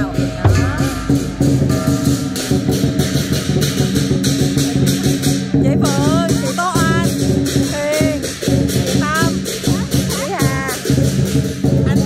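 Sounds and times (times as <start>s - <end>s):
music with a steady beat: 0.0s - 12.0s.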